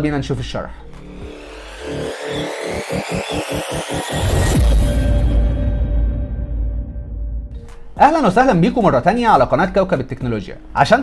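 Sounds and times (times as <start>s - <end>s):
stuttering noisy pulse: 0.8s - 7.6s.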